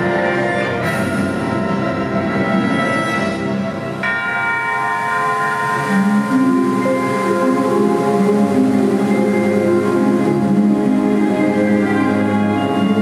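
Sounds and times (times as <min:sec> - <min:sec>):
low sustained orchestral notes: 0:00.0 - 0:13.0
orchestral bell-like chord: 0:00.6 - 0:13.0.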